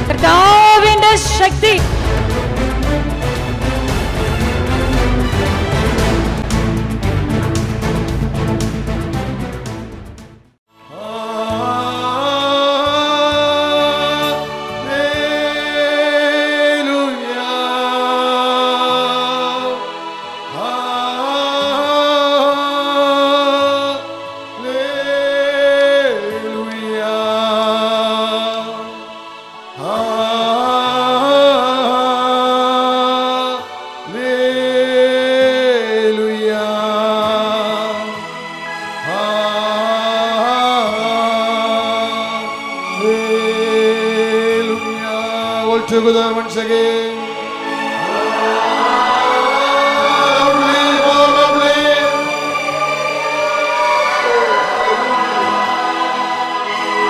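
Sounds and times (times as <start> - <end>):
keyboard worship music: 0.0 - 57.0
devotional chanting: 10.8 - 57.0
voices singing: 10.9 - 57.0.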